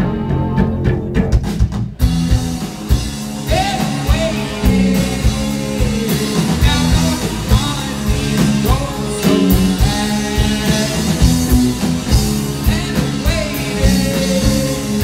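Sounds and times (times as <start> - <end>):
rock band playing live: 0.0 - 15.0
man singing lead vocal: 3.4 - 15.0.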